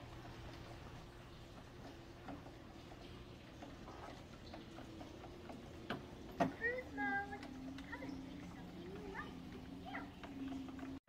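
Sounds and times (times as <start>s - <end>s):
faint irregular ticking and clicking: 0.0s - 11.0s
low steady hum: 0.0s - 11.0s.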